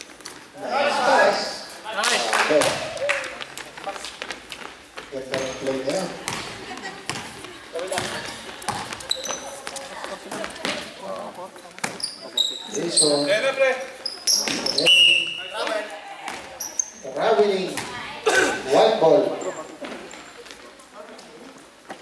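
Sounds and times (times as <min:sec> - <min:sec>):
players calling out: 0:00.5 - 0:04.0
shoes squeaking on court: 0:03.8 - 0:18.1
basketball bouncing on court: 0:05.3 - 0:09.4, 0:17.6 - 0:18.0.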